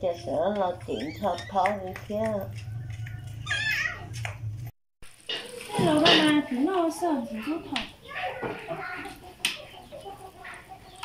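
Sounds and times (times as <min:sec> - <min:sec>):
chickens clucking: 0:00.1 - 0:04.3, 0:05.3 - 0:11.0.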